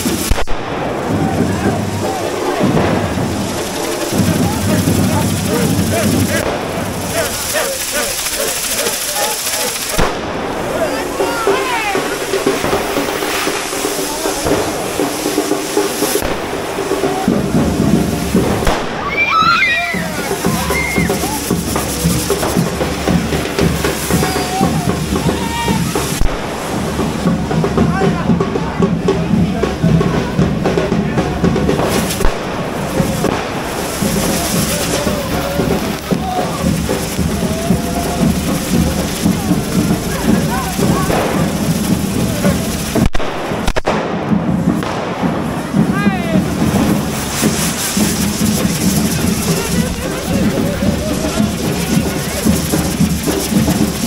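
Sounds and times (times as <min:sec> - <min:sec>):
music playing: 0:00.0 - 0:43.1, 0:44.6 - 0:54.0
fireworks hissing and crackling: 0:00.0 - 0:54.0
loud crowd of voices: 0:00.0 - 0:54.0.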